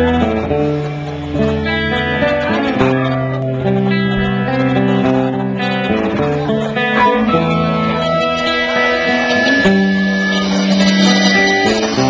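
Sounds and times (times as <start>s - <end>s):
guitars playing sustained chords: 0.0s - 12.0s.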